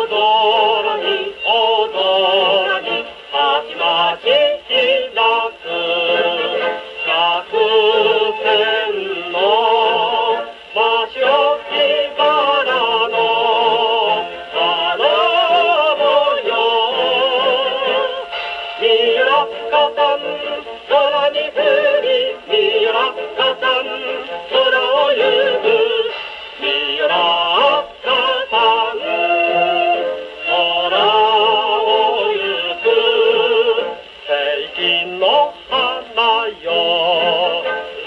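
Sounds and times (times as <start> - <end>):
gramophone record playing: 0.0 - 38.0
orchestral accompaniment: 0.0 - 38.0
singer with vibrato: 0.0 - 38.0.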